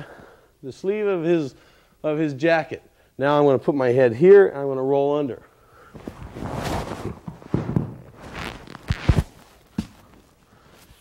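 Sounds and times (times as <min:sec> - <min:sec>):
cloth rustling: 0:05.9 - 0:11.0
bodies thumping on mat: 0:06.0 - 0:10.1.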